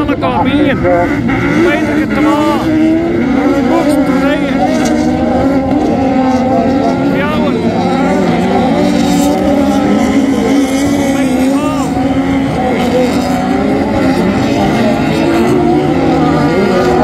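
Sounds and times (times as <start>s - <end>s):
racing car engines revving: 0.0s - 17.0s.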